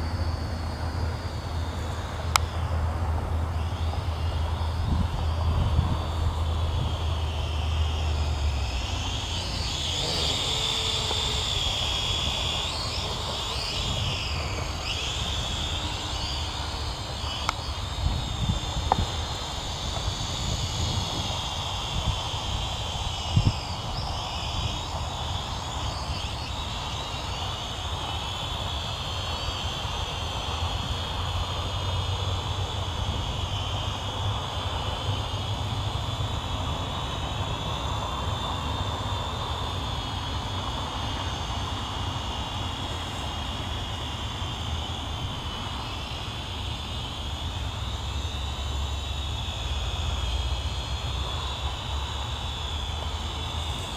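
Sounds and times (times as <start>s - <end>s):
drone propellers whining: 0.0s - 53.9s.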